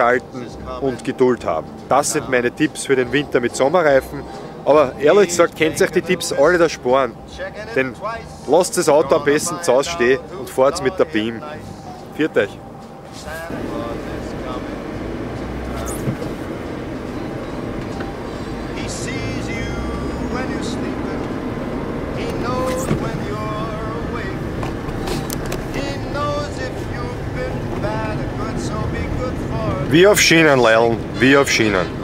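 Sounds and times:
song with singing: 4.0s - 30.7s
car rumbling on snow: 13.3s - 32.0s.

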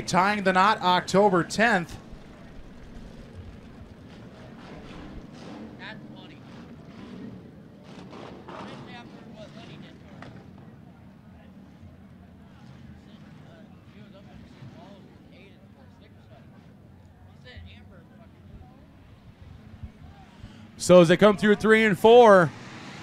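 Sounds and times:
faint voices: 0.0s - 22.5s
race cars droning: 0.0s - 23.0s.

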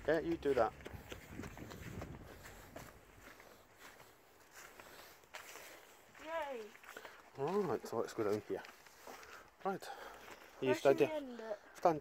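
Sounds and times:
handheld camera rumble: 0.0s - 6.1s
footsteps on grass: 0.0s - 11.6s.

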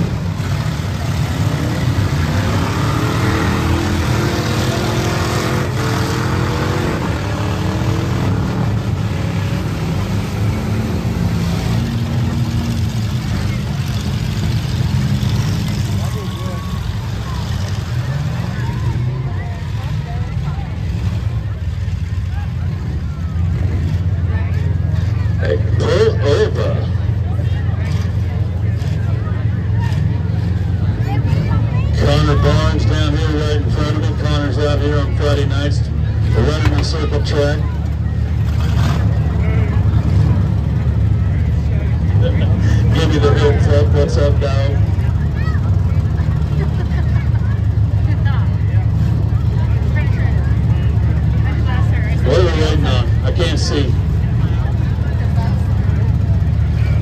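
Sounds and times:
car engines droning: 0.0s - 57.0s
crowd chatter: 0.0s - 57.0s.

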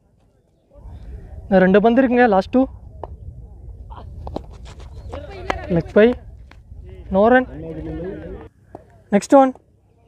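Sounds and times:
wind rumble on microphone: 0.7s - 8.5s.

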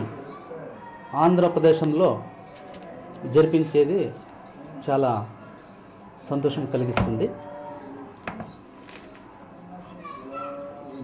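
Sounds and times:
children talking and playing: 0.0s - 11.0s.

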